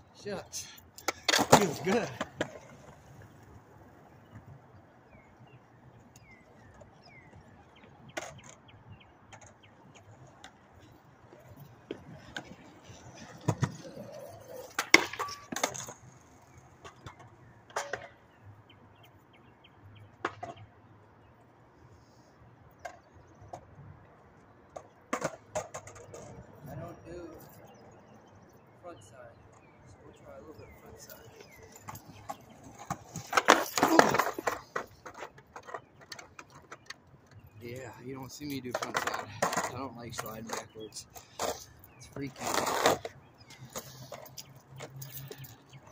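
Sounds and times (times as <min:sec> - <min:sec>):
skateboard clacking on concrete: 0:00.5 - 0:03.4, 0:06.2 - 0:18.4, 0:24.7 - 0:27.4, 0:30.5 - 0:45.9
skateboard scraping along bar: 0:11.9 - 0:16.7, 0:38.7 - 0:45.5.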